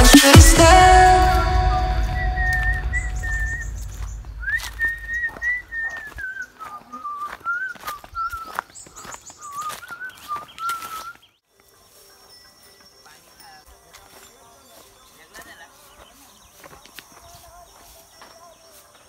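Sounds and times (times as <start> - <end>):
person whistling a tune: 0.6 - 3.8, 4.4 - 8.6
footsteps on dry leaves: 1.1 - 19.0.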